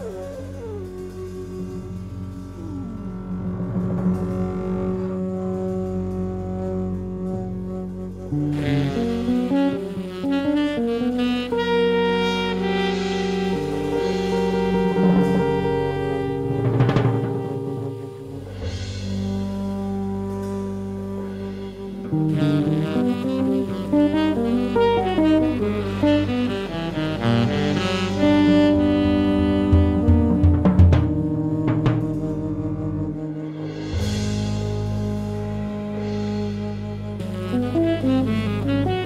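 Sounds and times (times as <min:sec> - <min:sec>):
double bass: 0:00.0 - 0:39.0
saxophone: 0:00.0 - 0:39.0
small-group jazz: 0:00.0 - 0:39.0.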